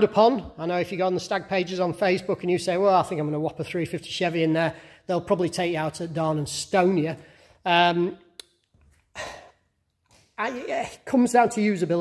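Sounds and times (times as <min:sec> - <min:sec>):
man breathing: 0:04.7 - 0:05.1, 0:07.2 - 0:07.7, 0:09.0 - 0:09.8.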